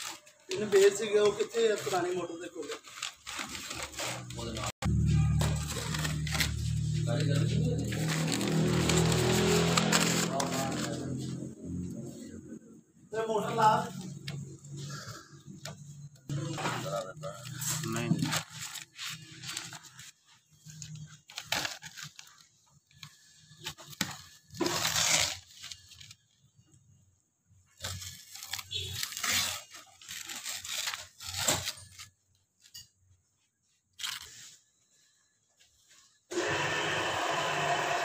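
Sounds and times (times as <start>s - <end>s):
protective film peeling and crinkling: 0.0s - 11.5s, 13.4s - 27.0s, 27.7s - 32.8s, 33.7s - 34.8s.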